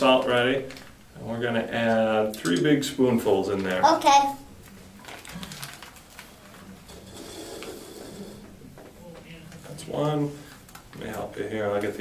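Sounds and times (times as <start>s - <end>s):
paper packet rustling: 4.7s - 6.8s.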